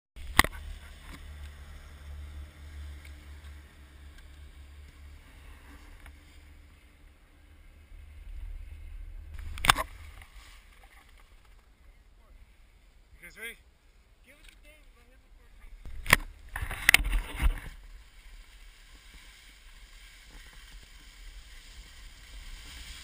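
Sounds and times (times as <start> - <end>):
skis running over snow: 16.6 - 23.0.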